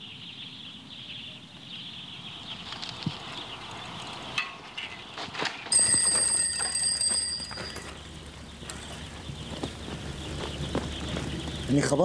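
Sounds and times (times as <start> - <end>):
bicycle bell ringing: 5.7 - 8.0.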